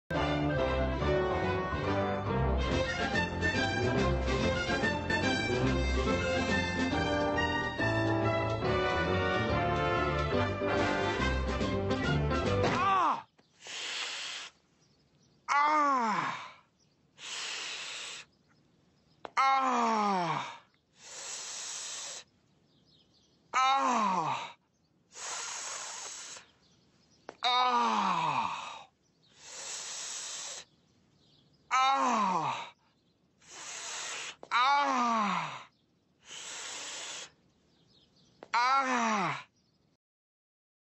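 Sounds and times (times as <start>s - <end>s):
person groaning: 15.5s - 16.6s, 19.4s - 20.6s, 23.6s - 24.6s, 27.4s - 28.9s, 31.7s - 32.7s, 34.5s - 35.7s, 38.6s - 39.5s.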